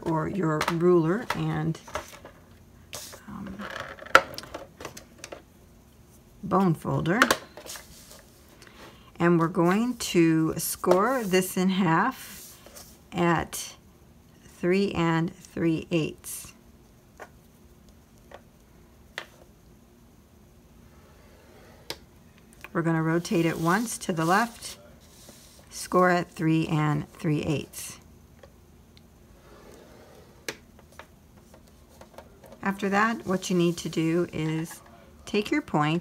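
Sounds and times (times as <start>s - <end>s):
scoring tool scraping card: 23.1s - 25.8s, 32.7s - 34.8s.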